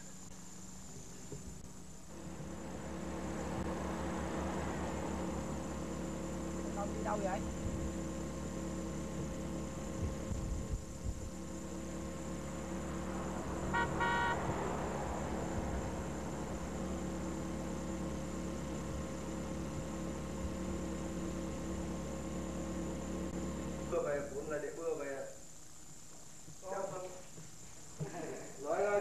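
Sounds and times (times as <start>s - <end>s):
car horn toot: 13.6s - 15.1s.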